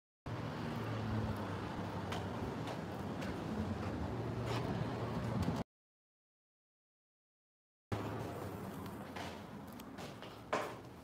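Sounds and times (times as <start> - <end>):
distant traffic hum: 0.3 - 5.6, 7.9 - 11.0
faint footsteps: 0.8 - 5.6, 8.0 - 11.0.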